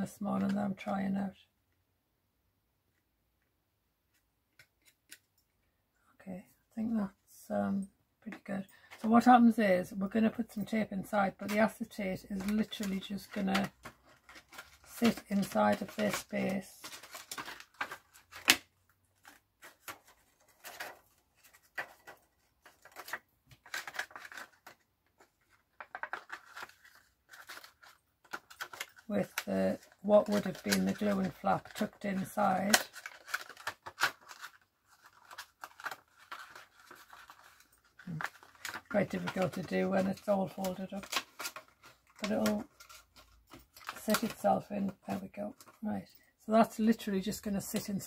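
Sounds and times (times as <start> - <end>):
plastic sheet and card crackling: 10.2 - 47.0.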